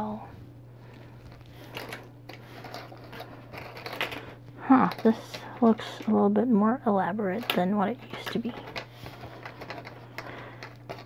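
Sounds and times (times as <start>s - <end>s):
plastic toy parts clicking on wood: 4.9s - 5.4s.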